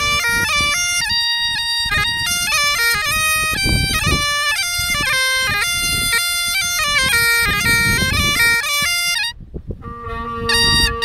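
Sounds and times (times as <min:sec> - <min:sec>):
bagpipe chanter melody: 0:00.0 - 0:11.0
bagpipe drones: 0:00.0 - 0:11.0
low wind rumble on microphone: 0:00.0 - 0:11.0.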